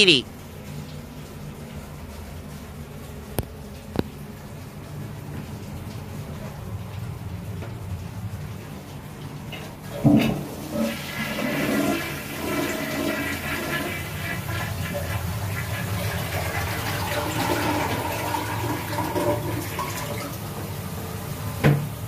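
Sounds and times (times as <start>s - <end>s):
toilet flushing: 0.6s - 22.0s.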